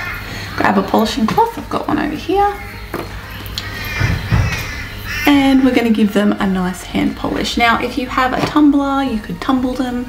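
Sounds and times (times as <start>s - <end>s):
soft low thuds: 4.0s - 4.9s.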